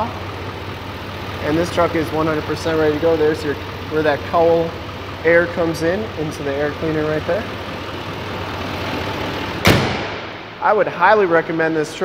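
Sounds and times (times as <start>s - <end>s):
diesel engine idling: 0.0s - 12.0s
truck hood slamming shut: 9.6s - 10.4s.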